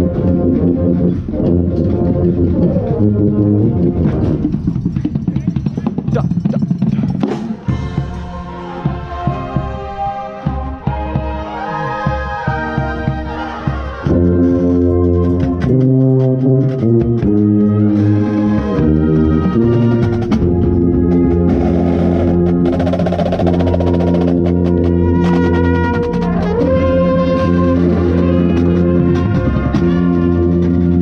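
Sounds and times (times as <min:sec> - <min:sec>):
brass playing sustained chords: 0:00.0 - 0:04.5, 0:07.6 - 0:31.0.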